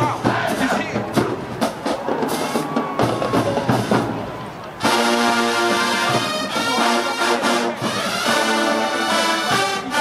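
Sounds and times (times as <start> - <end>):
marching drum line: 0.0 - 10.0.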